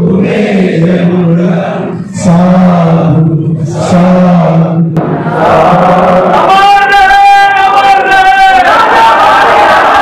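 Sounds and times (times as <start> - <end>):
men chanting in unison: 0.0 - 6.5.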